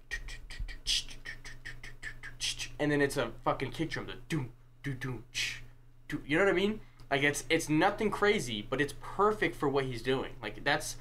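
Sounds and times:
low beatbox thump: 0:00.0 - 0:02.7
man beatboxing hi-hat clicks: 0:00.0 - 0:02.8.

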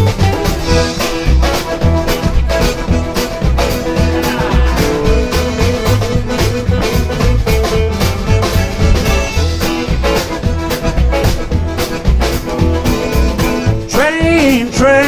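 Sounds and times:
accordion: 0:00.0 - 0:15.0
bass guitar: 0:00.0 - 0:15.0
drums: 0:00.0 - 0:15.0
electric guitar: 0:00.0 - 0:15.0.

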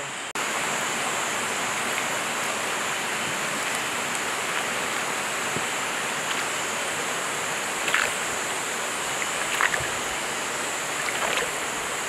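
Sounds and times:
high hiss: 0:00.0 - 0:12.0
river water rushing: 0:00.0 - 0:12.0.

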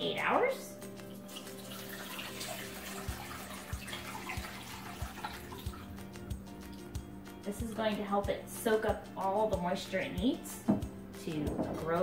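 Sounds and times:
background music with soft beat: 0:00.0 - 0:12.0
water pouring into a metal bowl: 0:01.0 - 0:06.0.

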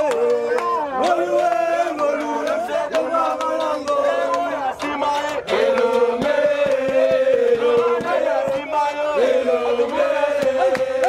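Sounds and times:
men chanting together: 0:00.0 - 0:11.0.

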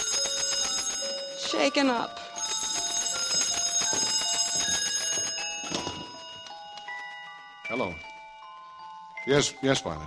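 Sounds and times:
music box tinkling melody: 0:00.0 - 0:10.0.

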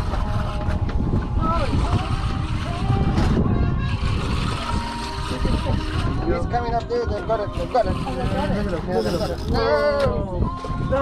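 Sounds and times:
low wind rumble on microphone: 0:00.0 - 0:11.0.

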